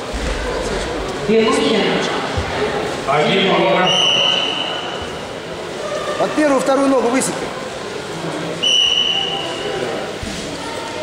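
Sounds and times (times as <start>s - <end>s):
referee's whistle blast: 3.8s - 5.0s, 8.6s - 9.7s.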